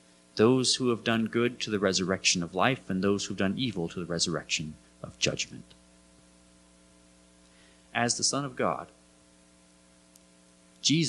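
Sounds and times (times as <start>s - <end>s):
faint electrical hum: 0.0s - 11.0s
man's voice: 0.4s - 5.6s, 8.0s - 8.9s.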